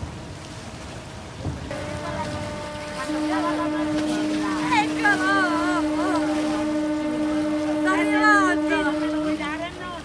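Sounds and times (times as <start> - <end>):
steady horn-like tone: 1.7 - 10.0.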